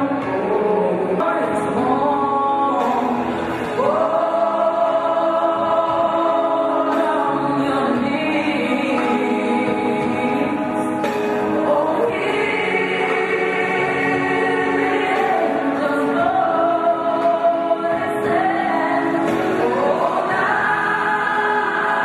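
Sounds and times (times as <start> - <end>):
choir singing slow song: 0.0 - 22.0.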